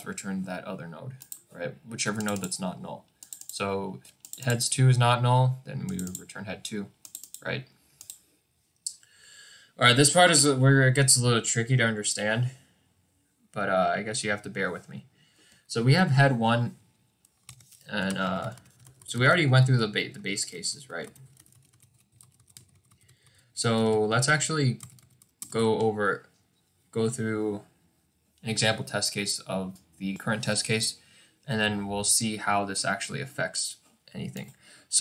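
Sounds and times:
person speaking: 0.0 - 7.7, 15.7 - 16.8, 17.5 - 21.6, 23.6 - 27.7, 28.4 - 35.0
computer keyboard or mouse clicks: 1.2 - 1.4, 2.2 - 2.5, 3.2 - 4.6, 5.9 - 6.3, 7.0 - 7.4, 8.0 - 8.2, 21.0 - 23.1
keys or mouse clicking: 2.1 - 2.6, 3.2 - 4.6, 5.8 - 6.3, 7.0 - 8.2.

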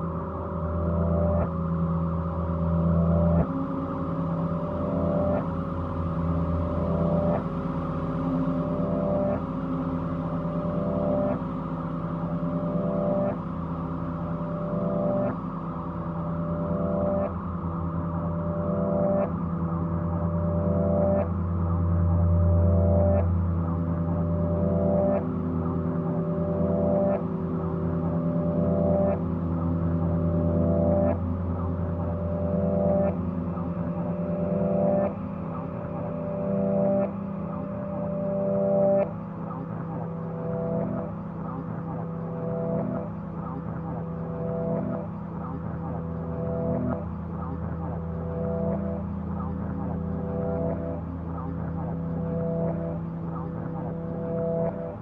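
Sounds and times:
sustained low drone tones: 0.0 - 55.0.

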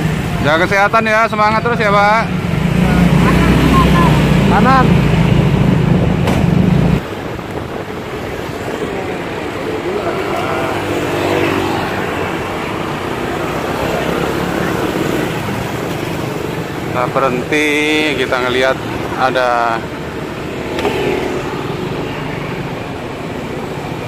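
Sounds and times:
engine and road noise: 0.0 - 24.0
faint voices: 7.7 - 16.2.

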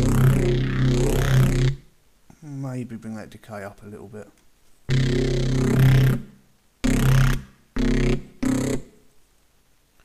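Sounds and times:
distorted bass synth stabs: 0.0 - 1.9, 4.9 - 8.9.

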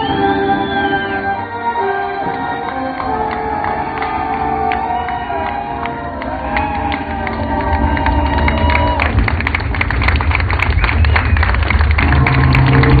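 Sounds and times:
held orchestral notes: 0.0 - 9.3, 11.9 - 13.0
heavy drumming: 6.8 - 13.0
deep bass note: 11.7 - 13.0
live symphonic death metal: 12.0 - 13.0.

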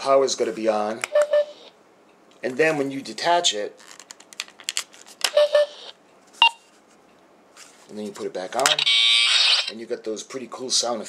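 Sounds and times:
short electronic beeps: 1.1 - 1.7, 5.3 - 6.6
toy speaker chirp: 1.1 - 1.7, 5.3 - 6.0, 8.7 - 9.7.

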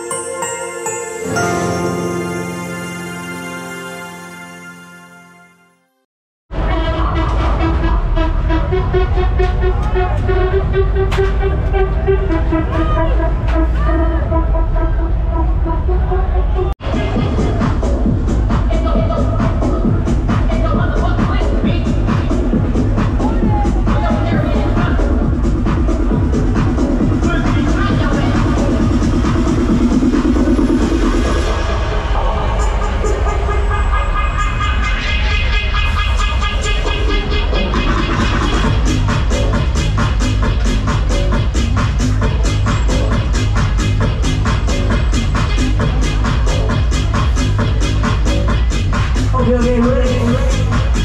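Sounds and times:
fairground music with heavy bass: 6.5 - 51.0
heavy low rumble: 6.5 - 51.0
steady pitched tones: 6.5 - 51.0.

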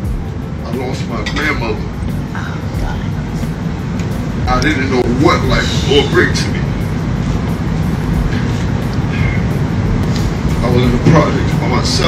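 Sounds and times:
music with heavy bass: 0.0 - 12.0
room noise: 0.0 - 12.0.

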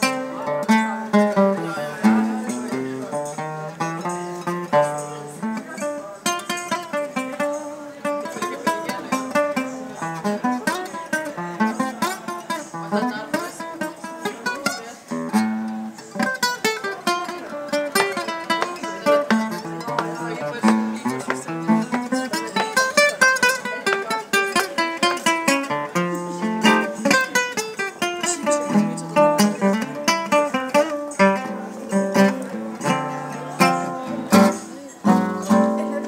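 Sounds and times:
fingerstyle classical guitar: 0.0 - 36.0.

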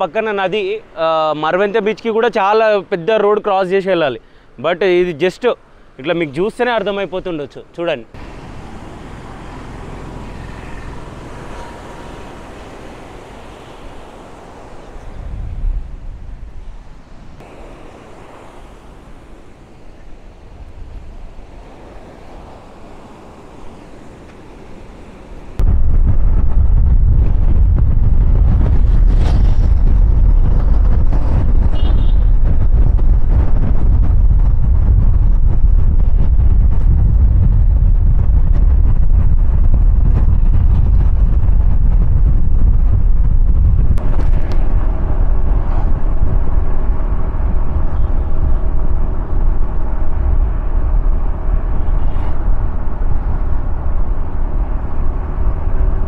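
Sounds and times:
light wind at shore: 0.0 - 56.0
sea surf: 8.1 - 25.6
wind buffeting microphone: 8.2 - 56.0.

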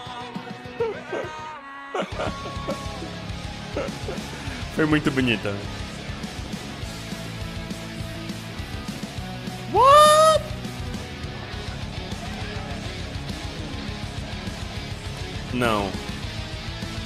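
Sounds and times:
background music: 0.0 - 17.0
man's falsetto ooh: 9.7 - 10.6.

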